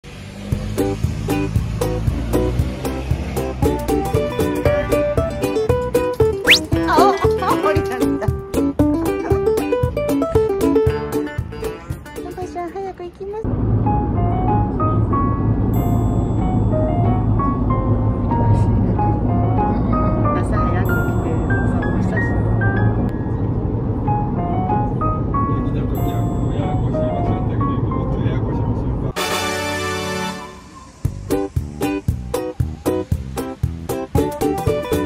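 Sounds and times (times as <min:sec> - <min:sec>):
light melodic background music: 0:00.6 - 0:35.0
car road noise rumble: 0:12.5 - 0:29.2.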